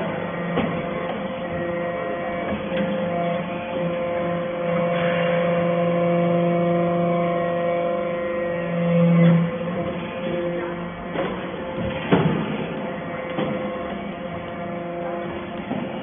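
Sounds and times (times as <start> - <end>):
hydraulic press humming: 0.0 - 16.0.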